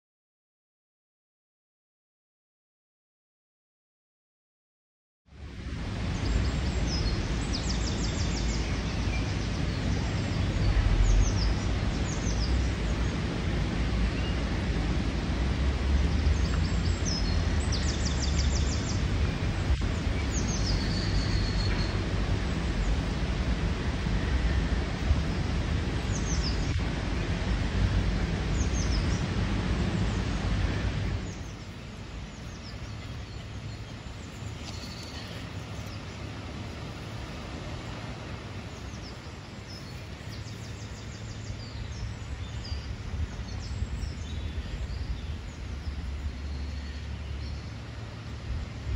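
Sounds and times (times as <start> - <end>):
shallow stream rushing: 5.3 - 48.9
small birds chirping and trilling: 6.2 - 13.3, 16.2 - 23.2, 25.2 - 27.4, 28.4 - 38.0, 38.6 - 47.9
low rumble: 9.3 - 38.5.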